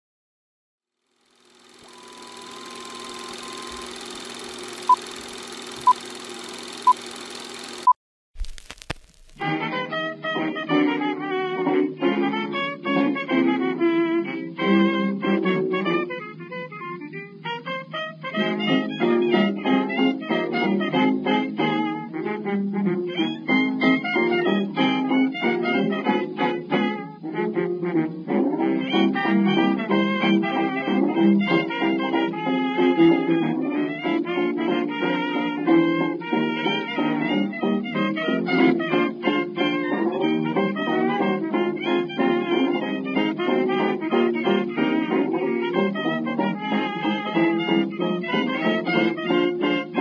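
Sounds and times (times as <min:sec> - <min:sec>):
machine hum with hiss: 0:01.1 - 0:07.9
short high beeps: 0:01.6 - 0:08.0
violin: 0:28.9 - 0:50.0.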